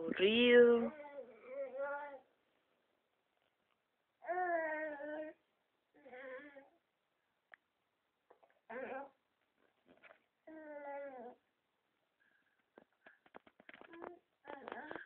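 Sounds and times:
baby fussing and whining: 0:00.9 - 0:02.4, 0:04.2 - 0:06.8.

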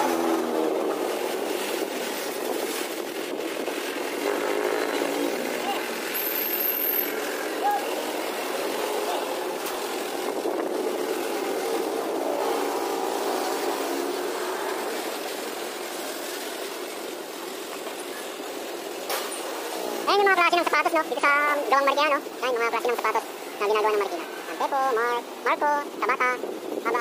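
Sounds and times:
car engine noise: 0:00.0 - 0:27.0
vehicles passing: 0:00.0 - 0:27.0.

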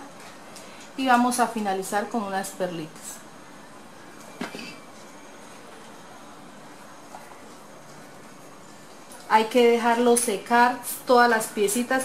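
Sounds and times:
low room tone hiss: 0:00.0 - 0:12.0.

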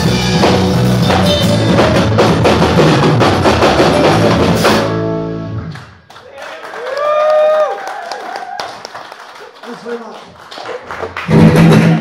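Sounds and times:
electric guitars and bass chord: 0:00.0 - 0:05.8.

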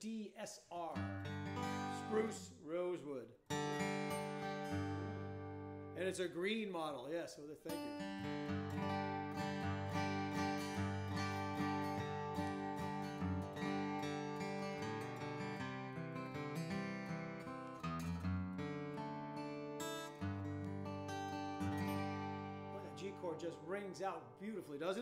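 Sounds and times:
acoustic guitar chords strummed: 0:01.0 - 0:02.4, 0:03.5 - 0:06.1, 0:07.7 - 0:24.5.

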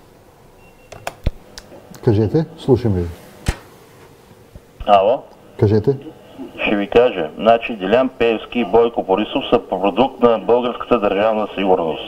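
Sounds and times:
sharp clicks: 0:00.9 - 0:02.0.

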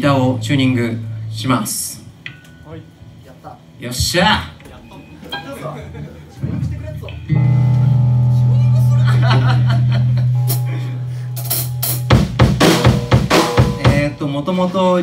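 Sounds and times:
low electric string note: 0:07.1 - 0:09.2
drum kit hits on snare and kick: 0:11.4 - 0:14.2.

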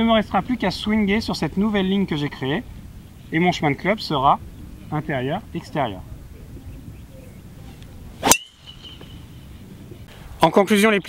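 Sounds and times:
golf driver striking ball: 0:08.2 - 0:08.8
clubhead high ringing tone: 0:08.2 - 0:09.3.

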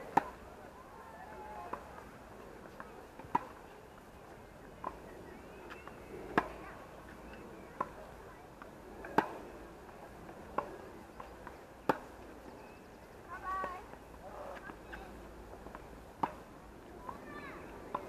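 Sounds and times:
tennis racket hitting ball: 0:16.2 - 0:16.4.

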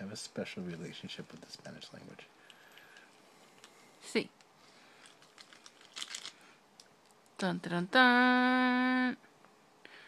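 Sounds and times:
plastic packet crinkling: 0:04.9 - 0:07.3.

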